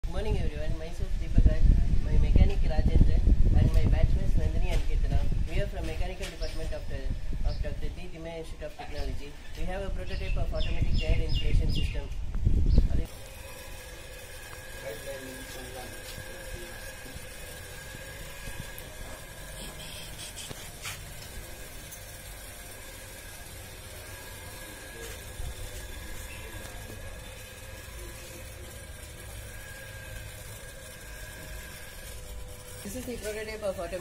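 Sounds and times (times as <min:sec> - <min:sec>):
steady background hum: 0:00.1 - 0:34.0.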